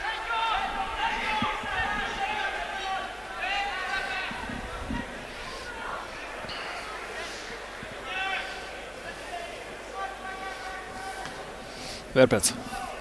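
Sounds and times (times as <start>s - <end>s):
stadium ambience: 0.0s - 13.0s.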